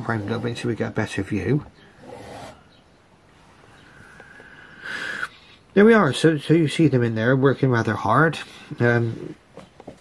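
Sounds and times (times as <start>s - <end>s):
faint hiss: 3.3s - 6.0s.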